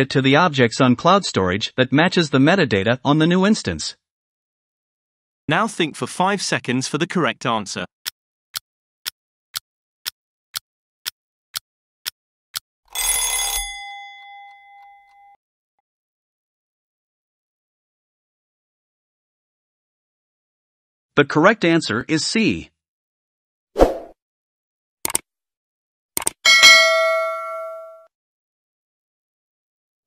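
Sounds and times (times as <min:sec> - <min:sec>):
timer bell ringing: 0:13.0 - 0:15.4, 0:26.5 - 0:28.1.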